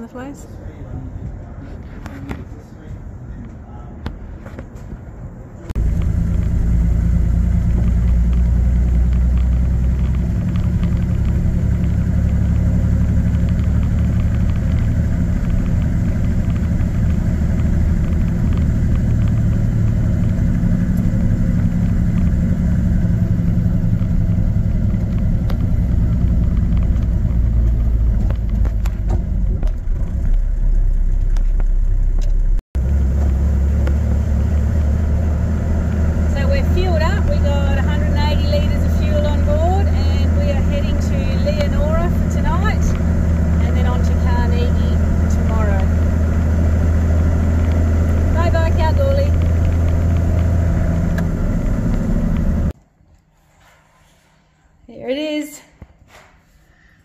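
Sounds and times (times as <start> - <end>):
vehicle engine rumble: 0.0 - 55.4.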